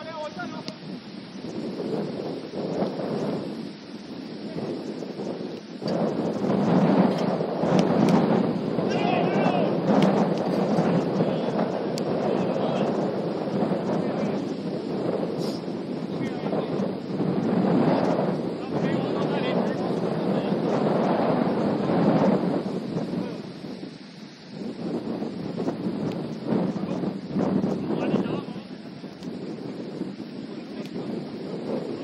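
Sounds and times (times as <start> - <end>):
faint voices: 0.0 - 1.0, 4.4 - 5.5, 8.6 - 23.7, 26.6 - 32.0
wind rumbling on microphone: 0.0 - 32.0.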